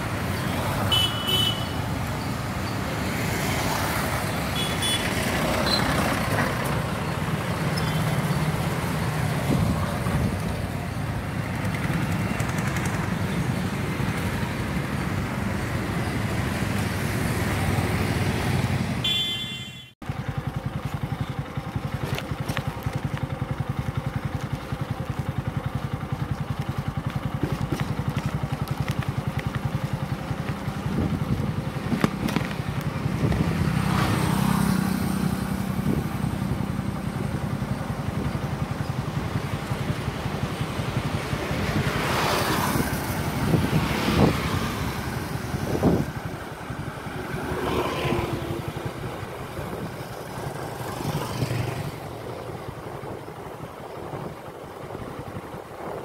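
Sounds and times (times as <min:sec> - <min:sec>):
motorcycle and scooter engines: 0:00.0 - 0:56.0
road noise: 0:00.0 - 0:56.0
short horn toots: 0:19.0 - 0:19.9.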